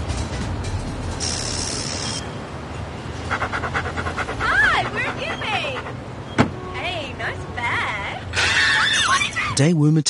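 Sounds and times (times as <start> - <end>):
car door shutting: 6.3 - 6.6.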